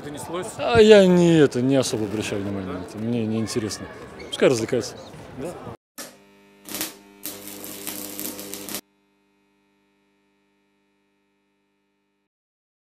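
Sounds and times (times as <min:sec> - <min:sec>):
electric hum: 0:06.0 - 0:12.3.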